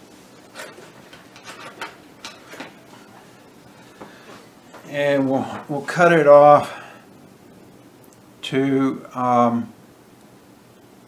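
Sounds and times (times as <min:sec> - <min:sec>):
hand tools clicking and tapping: 0:00.6 - 0:03.2.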